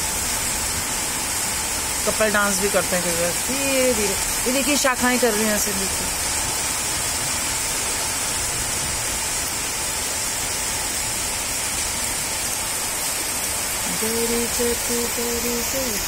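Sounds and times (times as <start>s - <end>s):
heavy rain pouring: 0.0s - 16.0s.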